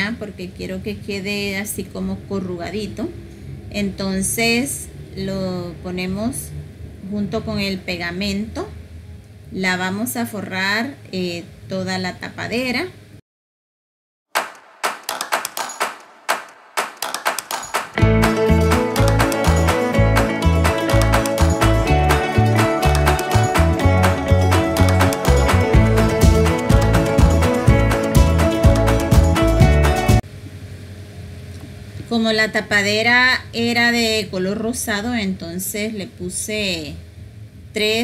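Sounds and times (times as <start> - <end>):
background music with beat: 14.4 - 30.2.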